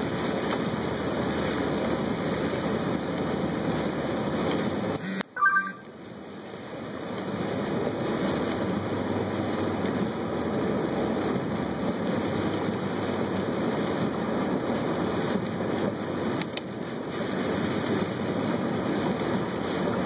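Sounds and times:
tyres hissing on wet road: 0:00.0 - 0:20.0
two-note high tone: 0:05.0 - 0:05.9.

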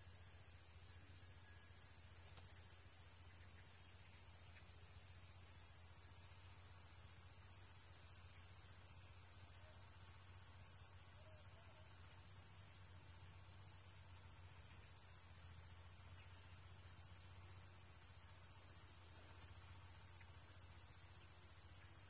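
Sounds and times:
crickets chirring: 0:00.0 - 0:22.0.

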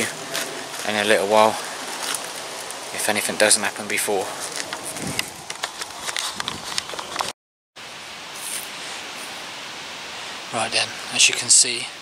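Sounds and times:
wind hiss on microphone: 0:00.0 - 0:05.5, 0:06.2 - 0:07.2, 0:07.8 - 0:12.0
handheld camera clicks and rustles: 0:01.9 - 0:02.8, 0:04.4 - 0:07.3.

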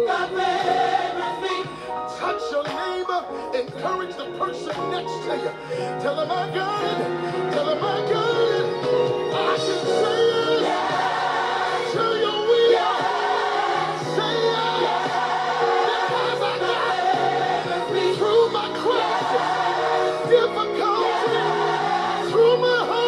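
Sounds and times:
gospel choir singing: 0:00.0 - 0:23.0
instrumental accompaniment: 0:00.0 - 0:23.0.

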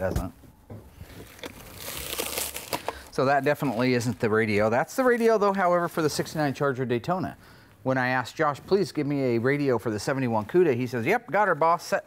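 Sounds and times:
packaging crinkling and rustling: 0:01.0 - 0:06.1.

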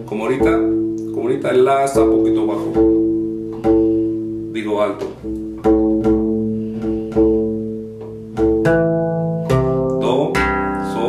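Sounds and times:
bass guitar strings plucked: 0:00.0 - 0:11.0.

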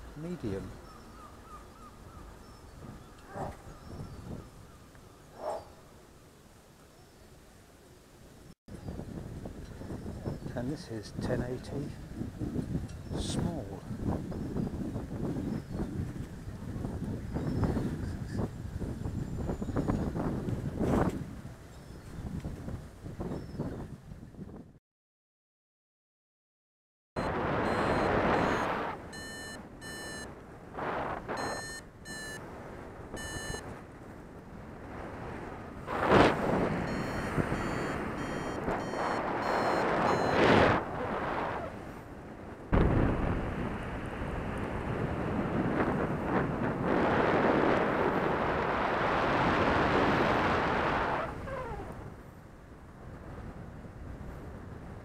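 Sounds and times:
wind buffeting microphone: 0:00.0 - 0:06.0, 0:08.7 - 0:24.8, 0:27.2 - 0:55.0
rapid repeated beeping: 0:27.7 - 0:30.3, 0:31.4 - 0:32.4, 0:33.2 - 0:33.6, 0:36.8 - 0:40.4.

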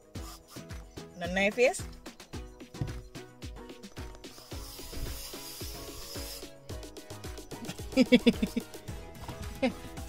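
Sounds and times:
aerosol can hissing: 0:00.0 - 0:00.8, 0:04.0 - 0:06.9
music with deep bass beat: 0:00.0 - 0:10.0.

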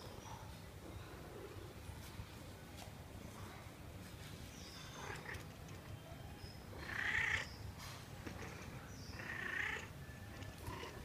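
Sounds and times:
cat meowing: 0:06.8 - 0:07.5, 0:09.2 - 0:11.0.

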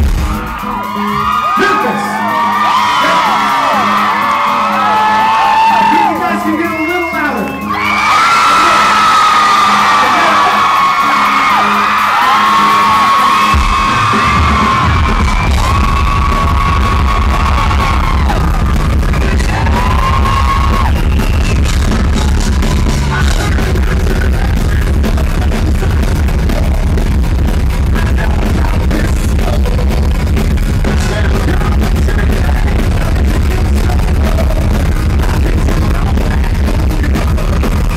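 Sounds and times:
bass and drums beat: 0:00.0 - 0:37.9
fans screaming and whooping: 0:00.0 - 0:37.9
man singing lead vocal: 0:16.5 - 0:27.2, 0:27.8 - 0:37.9.

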